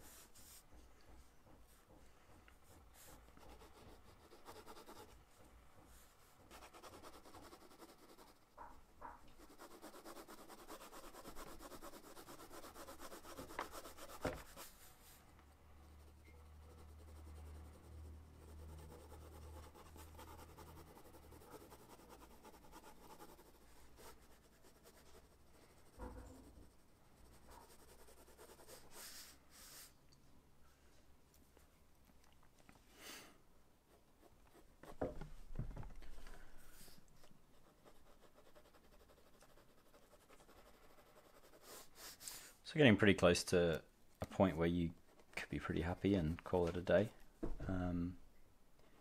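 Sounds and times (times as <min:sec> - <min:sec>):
pencil shading on paper: 0:02.6 - 0:05.5, 0:06.4 - 0:29.9, 0:37.6 - 0:42.4.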